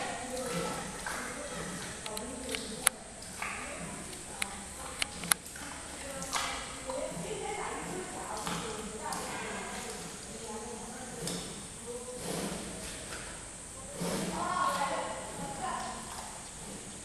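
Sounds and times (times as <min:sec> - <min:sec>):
people talking in background: 0:00.0 - 0:16.9.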